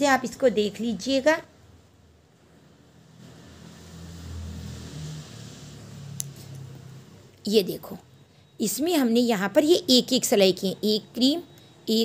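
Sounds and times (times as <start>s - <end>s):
faint hiss: 1.6s - 7.3s
passing vehicle engine rumble: 2.7s - 7.4s.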